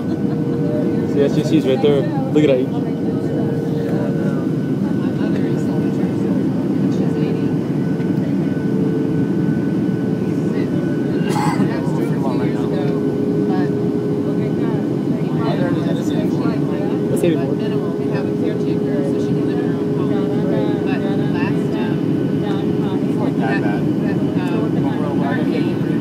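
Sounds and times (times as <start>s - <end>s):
jet engine and airflow drone: 0.0s - 26.0s.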